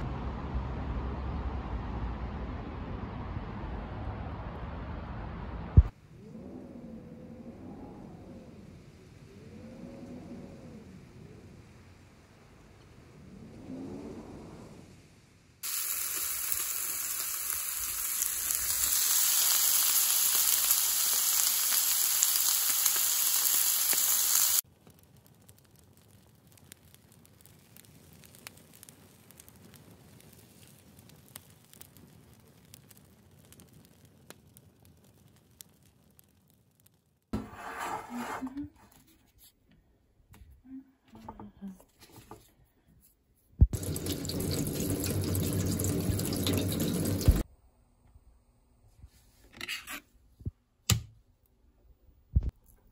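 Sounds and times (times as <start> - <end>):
meat sizzling on a grill pan: 15.6 - 24.6.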